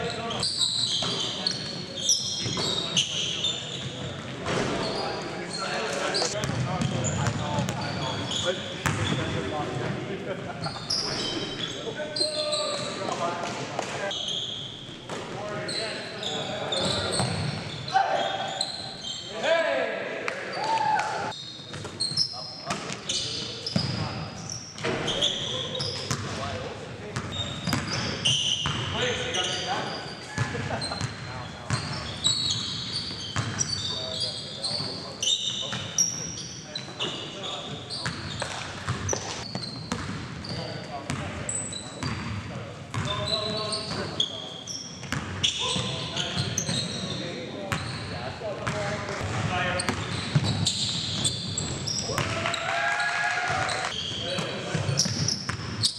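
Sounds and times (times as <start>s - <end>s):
sneaker squeaks: 0.0s - 9.8s, 10.6s - 19.4s, 20.5s - 52.7s, 53.5s - 55.9s
basketball bouncing on wooden floor: 38.0s - 40.3s.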